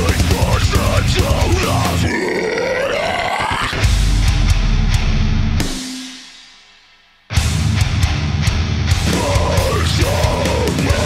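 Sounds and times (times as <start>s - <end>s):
fast drums: 0.0s - 2.1s, 3.7s - 11.0s
guttural screamed vocal: 0.0s - 3.9s, 9.1s - 11.0s
heavy guitars: 0.0s - 6.4s, 7.3s - 11.0s.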